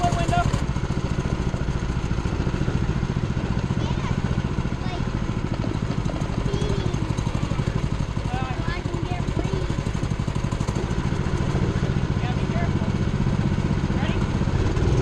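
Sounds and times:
go-kart engine running: 0.0 - 15.0.

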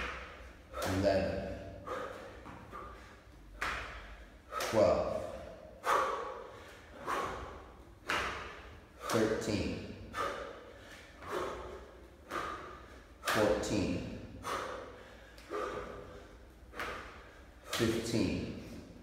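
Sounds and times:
man breathing hard: 0.0 - 19.0
hand claps: 3.5 - 4.0, 8.0 - 9.2.

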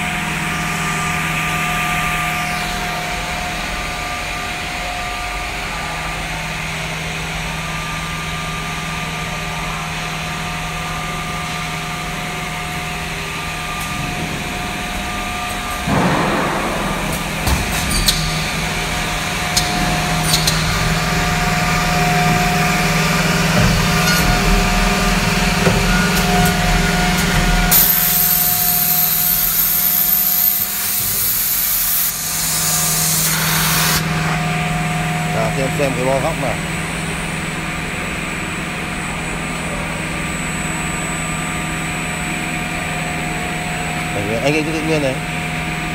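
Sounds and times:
machine hum with whining motors: 0.0 - 45.9.

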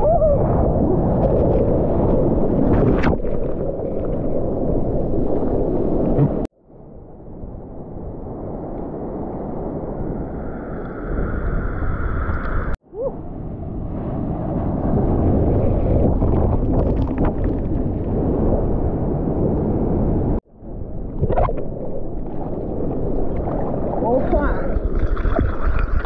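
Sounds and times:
sea water rushing and splashing: 0.0 - 6.5, 20.9 - 26.0.

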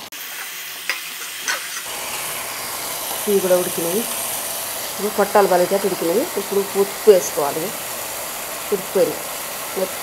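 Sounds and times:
paste sizzling in oil: 0.0 - 10.0.

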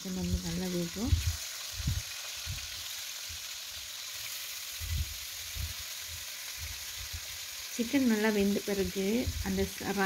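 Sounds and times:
chicken sizzling in hot oil: 0.0 - 10.0
soft low thumps in pan: 0.0 - 10.0.

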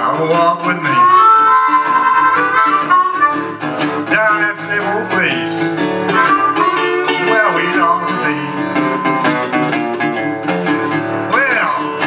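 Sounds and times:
resonator guitar accompaniment: 0.0 - 12.0
blues harmonica held note: 0.9 - 4.1, 6.0 - 9.3.

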